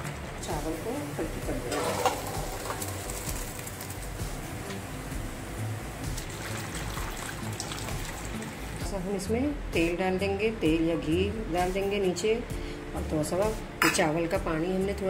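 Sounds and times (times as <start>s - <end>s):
water pouring into a colander: 6.2s - 8.6s.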